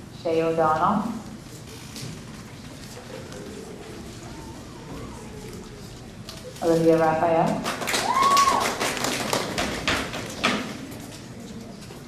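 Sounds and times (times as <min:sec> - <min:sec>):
audience applause: 0:07.6 - 0:10.3.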